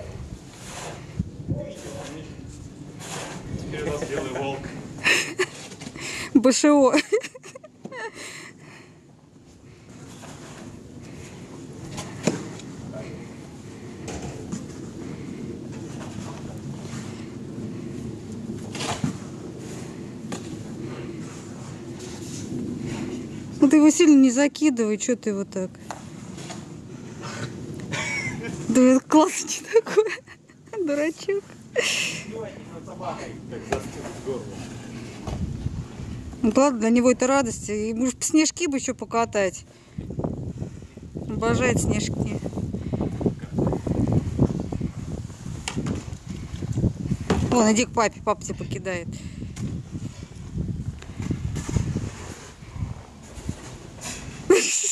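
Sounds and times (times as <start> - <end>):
wind rumble on microphone: 0.0 - 54.6
snow shovel scraping snow: 0.5 - 2.2, 3.0 - 3.5, 51.6 - 52.6.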